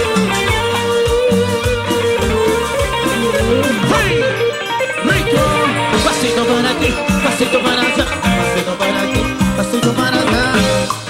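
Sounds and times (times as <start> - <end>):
cumbia band playing: 0.0 - 11.0.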